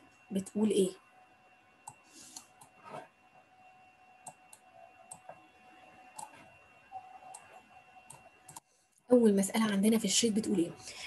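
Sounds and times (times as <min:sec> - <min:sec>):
computer mouse clicks: 0:01.8 - 0:03.0, 0:04.2 - 0:05.4, 0:06.1 - 0:06.5, 0:07.2 - 0:08.7
faint high-pitched tone: 0:06.8 - 0:08.0.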